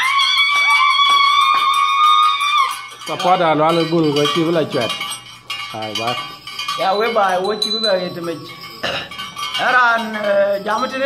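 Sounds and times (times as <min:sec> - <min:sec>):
small metal bells clinking: 0:00.0 - 0:11.0.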